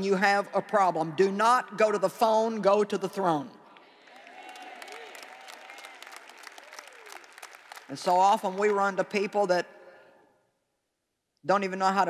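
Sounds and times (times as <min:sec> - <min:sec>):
audience applause: 0:04.0 - 0:08.7.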